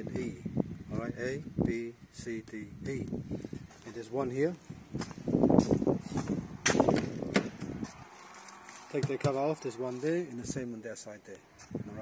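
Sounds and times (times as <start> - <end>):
footsteps on concrete: 4.8 - 9.5, 11.5 - 11.9
sharp knocks: 6.6 - 7.7.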